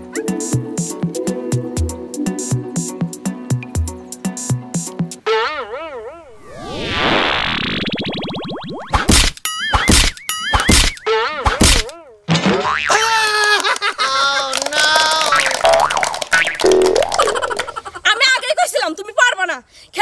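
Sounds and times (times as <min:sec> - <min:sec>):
warbling pitched effects: 0:06.3 - 0:10.7, 0:15.3 - 0:17.7
cartoon springy boings: 0:07.3 - 0:11.9, 0:15.3 - 0:17.6.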